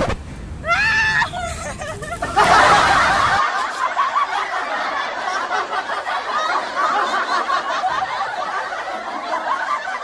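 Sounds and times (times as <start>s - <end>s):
young women laughing: 0.7s - 10.0s
women talking: 1.1s - 3.4s.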